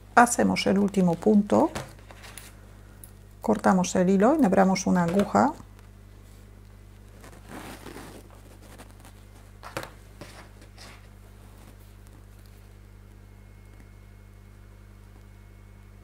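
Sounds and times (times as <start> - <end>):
low electrical hum: 0.0 - 16.0
yarn rustling: 7.1 - 9.6.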